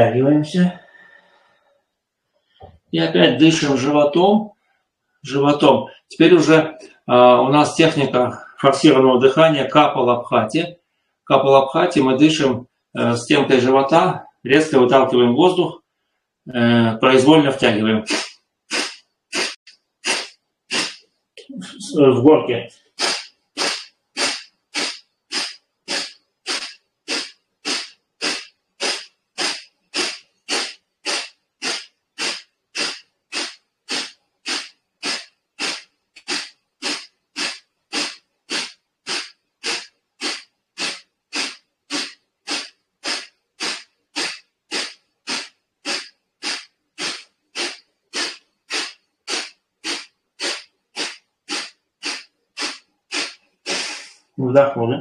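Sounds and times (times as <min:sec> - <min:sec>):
forceful nasal exhalations: 0:00.4 - 0:01.7, 0:05.8 - 0:07.1, 0:08.0 - 0:08.7, 0:17.9 - 0:22.0, 0:22.7 - 0:54.4.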